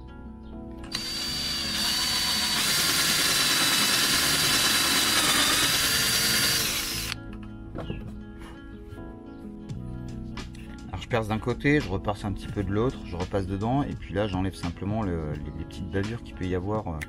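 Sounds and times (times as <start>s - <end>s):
cordless drill boring through plastic: 0.9s - 7.2s.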